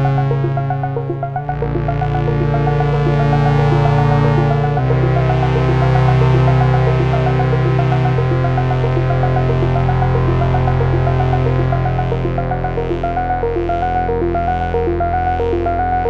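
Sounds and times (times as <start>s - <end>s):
short sequenced synth notes: 0.0s - 16.0s
synthesizer sustained chords: 0.0s - 16.0s.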